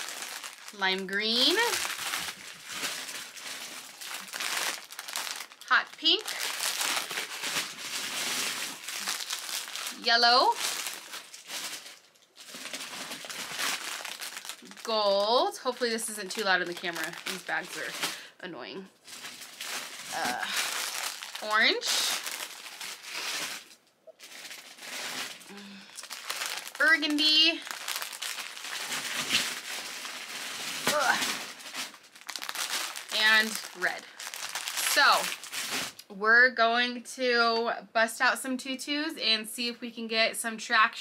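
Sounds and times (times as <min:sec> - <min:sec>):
plastic bags crinkling: 0:00.0 - 0:36.0
person groaning: 0:25.5 - 0:26.0.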